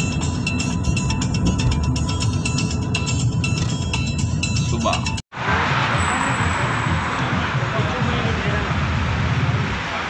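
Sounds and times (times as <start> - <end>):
music: 0.0 - 10.0
street traffic noise: 0.0 - 10.0.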